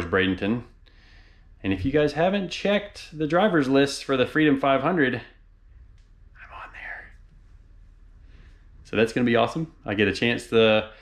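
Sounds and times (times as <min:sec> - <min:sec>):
low steady hum: 0:00.0 - 0:11.0
man whispering breathily: 0:06.4 - 0:07.2.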